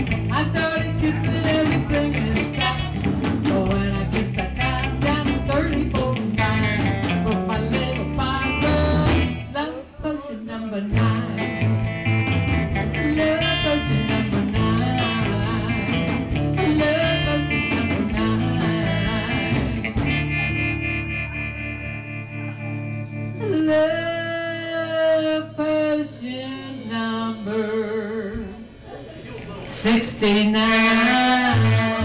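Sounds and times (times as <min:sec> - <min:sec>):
woman singing lead: 0:00.0 - 0:20.7, 0:23.4 - 0:29.0, 0:29.7 - 0:32.0
bass guitar: 0:00.0 - 0:29.0, 0:29.8 - 0:32.0
drums: 0:00.0 - 0:32.0
electric guitars: 0:00.0 - 0:32.0.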